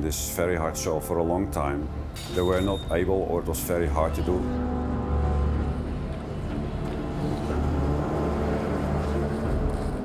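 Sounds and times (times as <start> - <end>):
ship machinery rumbling: 2.4 - 10.0.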